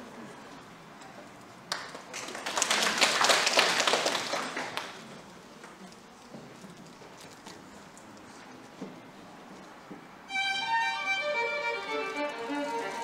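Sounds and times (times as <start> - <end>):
audience applauding: 1.7 - 5.0.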